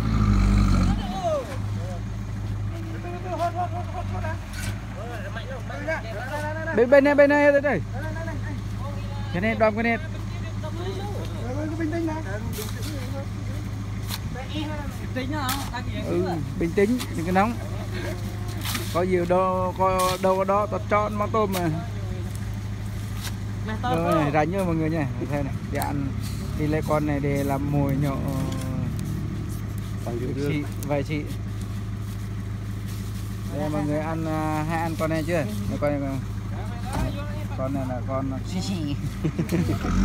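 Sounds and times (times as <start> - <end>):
men's voices: 0.0 - 40.0
truck engine idling: 0.0 - 40.0.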